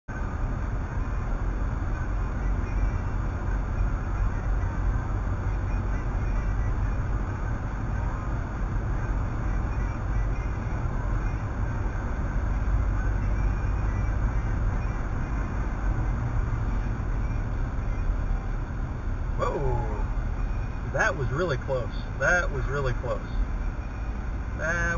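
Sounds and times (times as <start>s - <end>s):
car road and engine noise: 0.0s - 24.9s.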